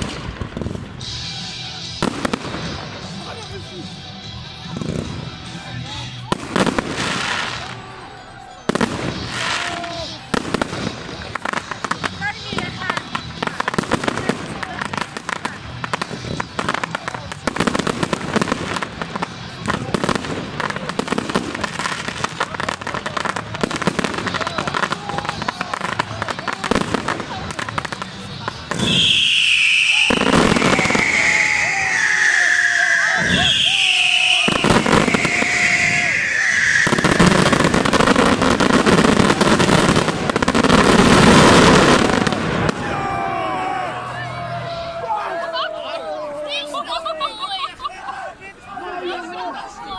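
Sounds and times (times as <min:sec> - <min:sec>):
fireworks bangs and cracks: 0:00.0 - 0:07.8, 0:08.6 - 0:43.8.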